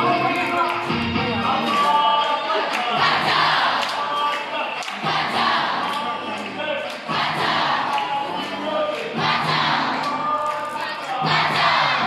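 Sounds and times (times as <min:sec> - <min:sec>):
group of voices singing: 0:00.0 - 0:12.0
steady beat: 0:05.0 - 0:12.0.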